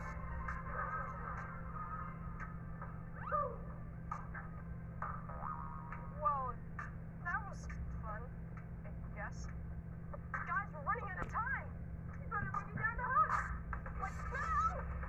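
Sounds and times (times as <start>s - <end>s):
steady low hum: 0.0s - 15.0s
tv music from speaker: 0.0s - 15.0s.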